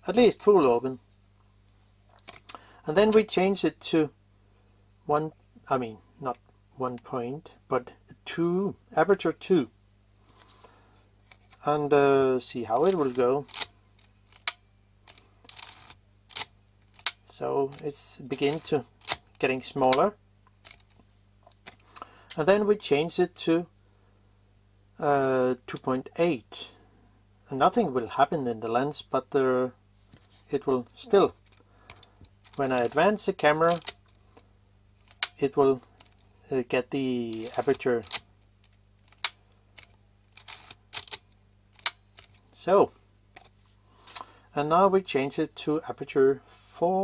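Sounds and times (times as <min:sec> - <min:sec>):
film advance lever rasping: 0:12.8 - 0:17.2, 0:33.6 - 0:34.0, 0:37.4 - 0:38.2, 0:39.0 - 0:41.2
camera mechanical rasp: 0:15.1 - 0:17.1.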